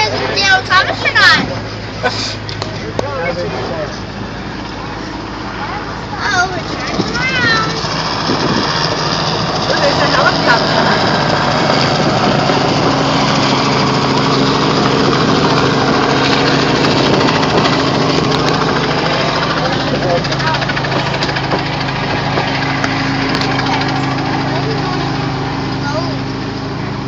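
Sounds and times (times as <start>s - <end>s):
engine humming: 0.0s - 27.0s.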